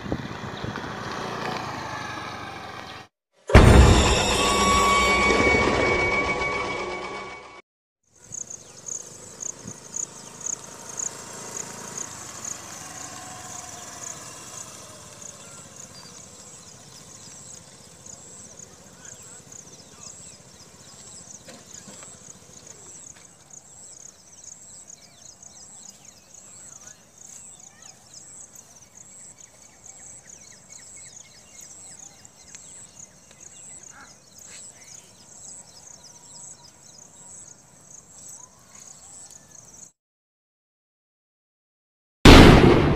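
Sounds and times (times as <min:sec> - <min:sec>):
faint motor scooter engine: 0:00.0 - 0:03.1, 0:08.2 - 0:39.9
insect chirping: 0:08.2 - 0:39.9
pulsing insect trill: 0:08.3 - 0:21.4.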